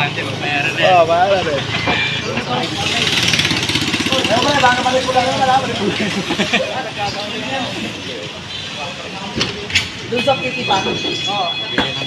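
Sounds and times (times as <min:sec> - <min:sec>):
passing traffic: 0:00.0 - 0:12.0
people talking and calling out: 0:00.0 - 0:12.0
street noise: 0:00.0 - 0:12.0.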